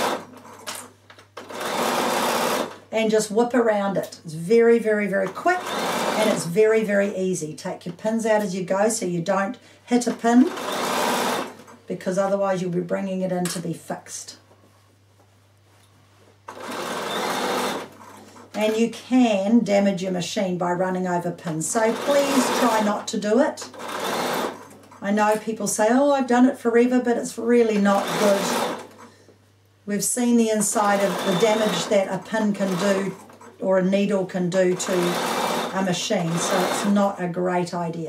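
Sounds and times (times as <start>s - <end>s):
sewing machine stitching: 0.0s - 2.8s, 5.2s - 6.5s, 10.1s - 11.6s, 16.5s - 18.9s, 21.7s - 25.0s, 27.7s - 29.1s, 30.6s - 33.6s, 34.5s - 37.2s.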